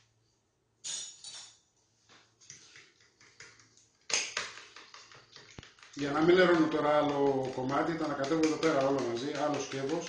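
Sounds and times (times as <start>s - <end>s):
fork beating eggs in plastic bowl: 2.4s - 10.0s.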